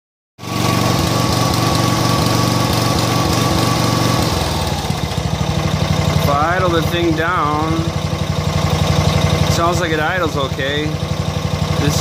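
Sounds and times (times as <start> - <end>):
riding mower engine running rough: 0.4 - 12.0.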